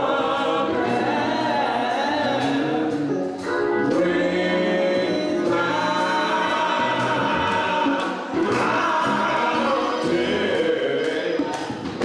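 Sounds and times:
group gospel singing: 0.0s - 12.0s.

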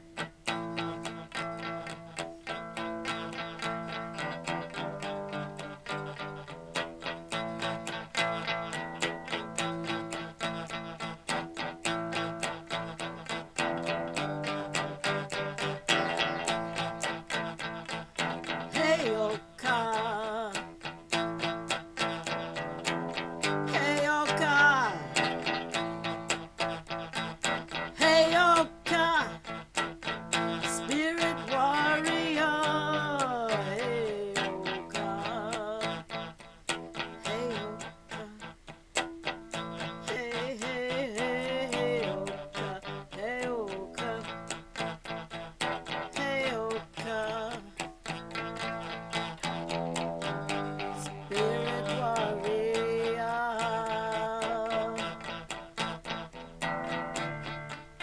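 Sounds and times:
gliding wavering guitar notes: 0.0s - 58.0s
guitar picking pattern: 0.0s - 58.0s.

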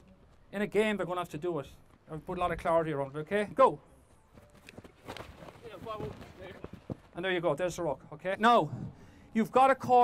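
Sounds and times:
quick footfalls: 4.3s - 7.2s.

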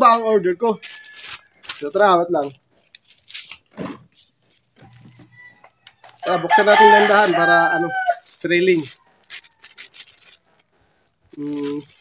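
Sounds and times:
plastic pouch rustling: 0.0s - 12.0s.

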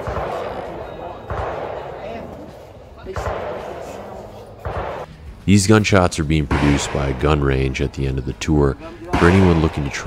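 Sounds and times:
distant gunshots with echo: 0.0s - 5.1s, 6.4s - 7.4s, 9.1s - 10.0s.

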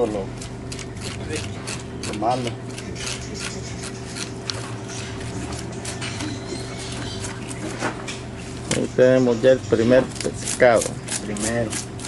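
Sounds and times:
knife scraping fish: 0.3s - 7.9s, 10.1s - 12.0s.

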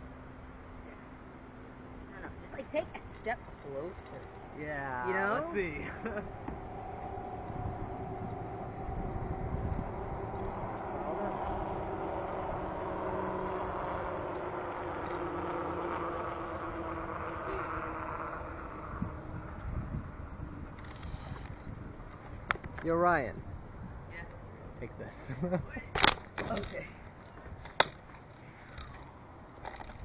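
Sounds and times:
engine drone: 0.0s - 30.0s
wind rumble on microphone: 3.4s - 26.7s.

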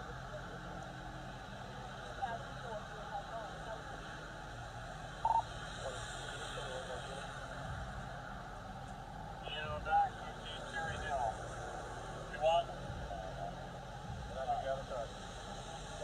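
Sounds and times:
low voices in conversation: 0.0s - 16.0s
rain hiss: 0.0s - 16.0s
street noise: 0.0s - 16.0s
short electronic beep: 5.2s - 5.5s.

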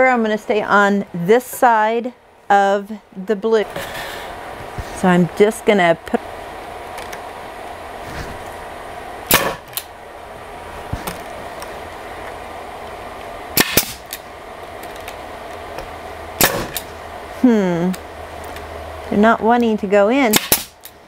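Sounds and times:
pneumatic nailer shots: 9.3s - 9.9s, 13.6s - 14.2s, 16.4s - 16.9s, 20.3s - 20.9s.

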